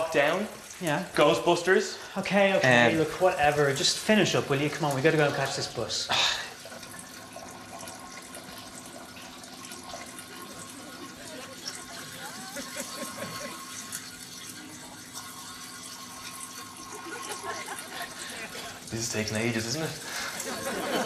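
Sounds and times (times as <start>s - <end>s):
trickle of running water: 0.0s - 21.0s.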